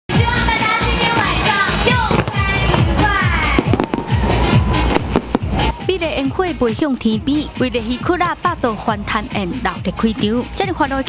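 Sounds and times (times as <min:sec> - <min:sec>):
music: 0:00.1 - 0:11.0
fireworks bangs and crackles: 0:00.8 - 0:06.5.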